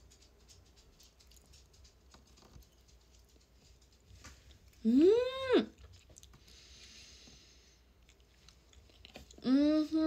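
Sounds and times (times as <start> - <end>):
soft chewing clicks: 0.0 - 4.9, 5.7 - 6.7, 7.8 - 9.4.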